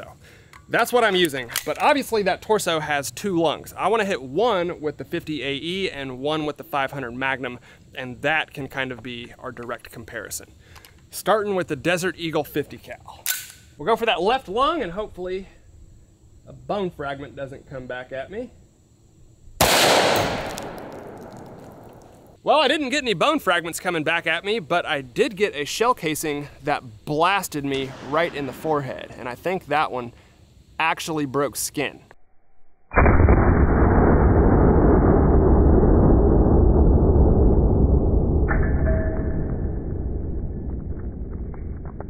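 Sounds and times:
pistol shot echoing: 19.6s - 22.0s
slowed pistol shot rumble: 19.6s - 22.3s, 32.9s - 38.8s
faint ringing tone: 38.6s - 40.7s.

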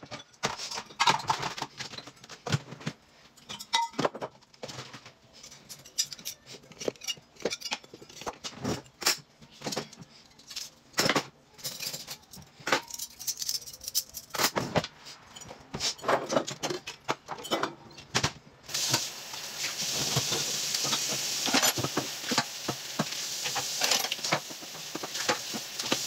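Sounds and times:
clicks and knocks of kitchen items: 0.0s - 26.0s.

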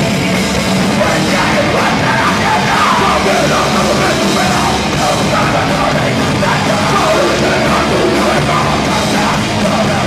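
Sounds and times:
punk band playing live: 0.0s - 10.0s
shouted lead vocal: 0.9s - 10.0s.

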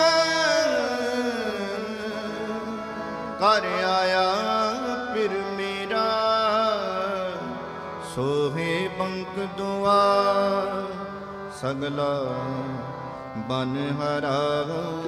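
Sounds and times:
harmonium chords: 0.0s - 15.0s
man singing devotional song: 0.0s - 15.0s
tabla: 0.0s - 15.0s.

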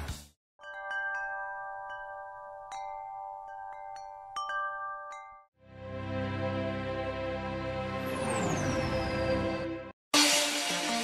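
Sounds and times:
bell-like chimes ringing: 0.6s - 5.5s.

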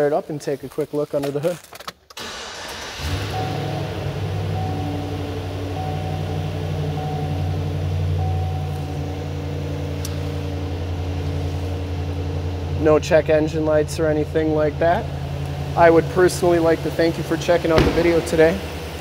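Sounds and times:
engine idling: 2.2s - 19.0s.

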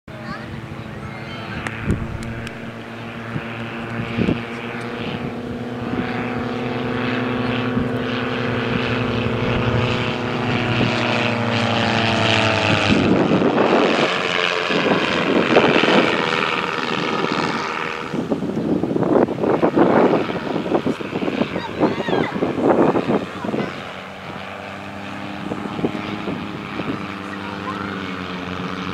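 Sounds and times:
propeller planes droning overhead: 0.1s - 28.9s.

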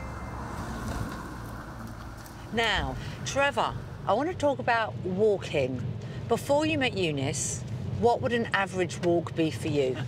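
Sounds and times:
car driving on road: 0.0s - 10.0s
wind: 0.0s - 10.0s.

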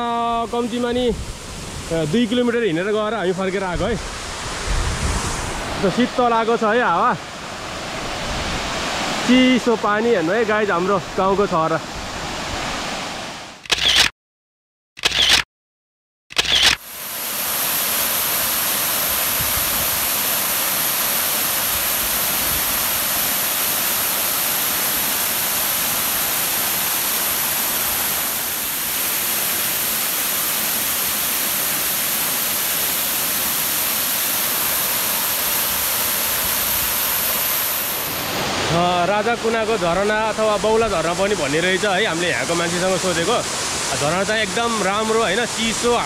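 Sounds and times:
waterfall rushing onto rocks: 16.7s - 46.0s.

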